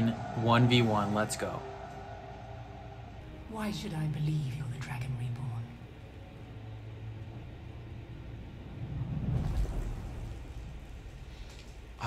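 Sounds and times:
low ambient soundtrack rumble: 0.0 - 12.0.

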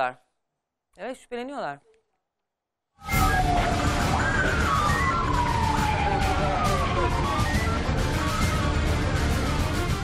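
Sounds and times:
wailing siren: 3.0 - 9.8
dramatic music with beat: 3.1 - 10.0.

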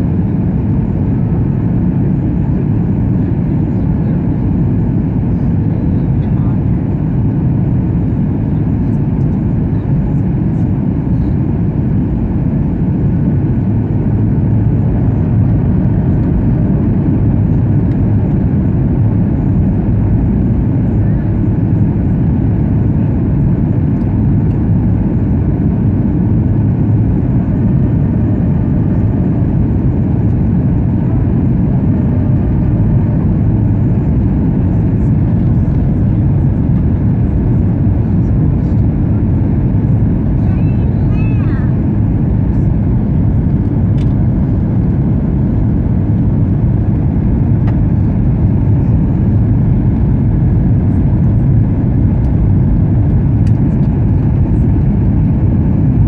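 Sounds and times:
airliner cabin engine noise: 0.0 - 56.0
turbofan engines and airflow: 0.0 - 56.0.

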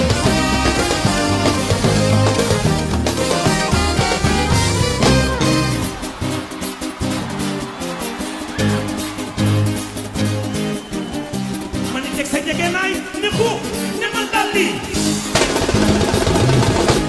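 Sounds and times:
stepping bass line: 0.0 - 7.8
band playing live: 0.0 - 17.0
drums and percussion: 0.0 - 17.0.

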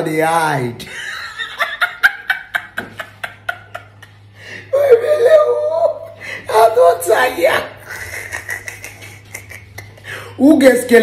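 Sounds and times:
man laughing: 0.9 - 6.0, 7.8 - 10.1.

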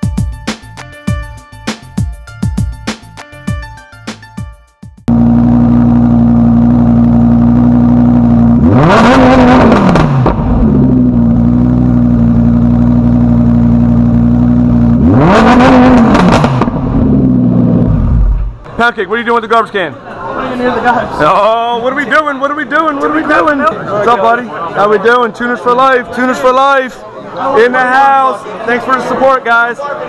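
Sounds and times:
car engine idling and revving: 5.1 - 18.6.

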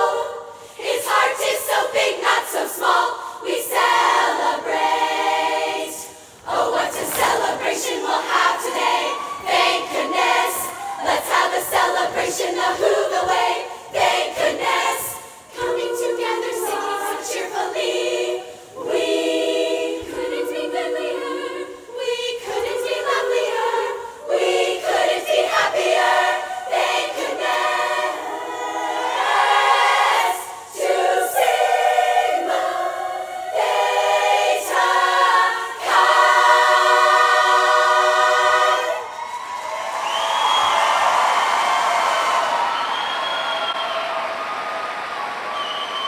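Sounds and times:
women's choir singing unaccompanied: 0.0 - 42.7.

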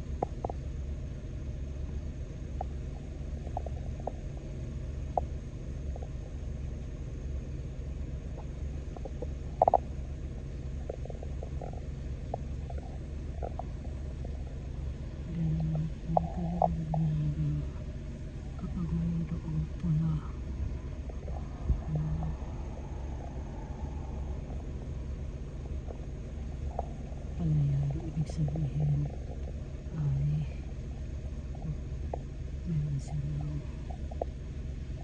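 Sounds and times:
drone rotors humming: 0.0 - 35.0.

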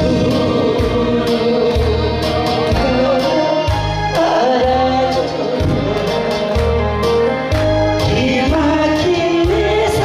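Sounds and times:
woman singing into a microphone: 0.0 - 6.8, 7.9 - 10.0
amplified instrumental accompaniment: 0.0 - 10.0.

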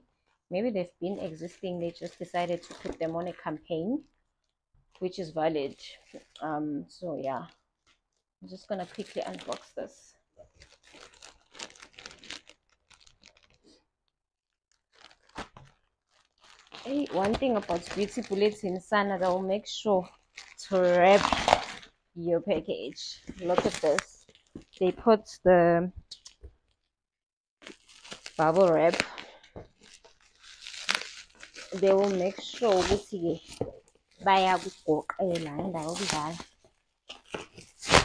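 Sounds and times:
plastic bag crinkling: 8.6 - 9.8, 10.4 - 13.8, 14.7 - 21.9, 22.5 - 24.9, 27.6 - 38.0.

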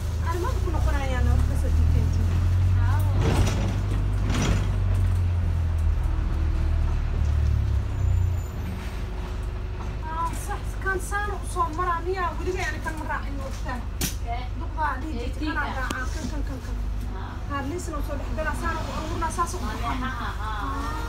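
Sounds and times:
voices: 0.0 - 3.8, 9.9 - 21.0
bus engine rumbling: 0.0 - 21.0.

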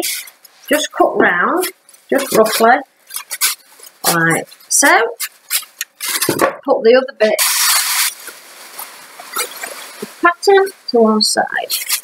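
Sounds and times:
tissue paper rustling: 1.5 - 6.4, 7.4 - 12.0.

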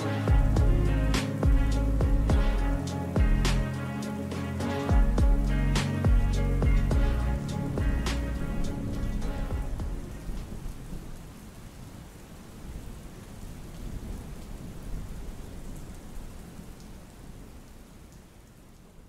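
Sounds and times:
song ending: 0.0 - 10.4
low rolling thunder: 0.0 - 11.6
steady rain: 0.0 - 19.0.

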